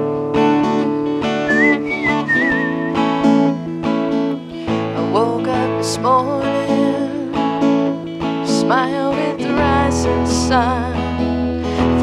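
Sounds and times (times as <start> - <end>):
acoustic guitar strumming: 0.0 - 12.0
whistled melody: 1.4 - 3.4.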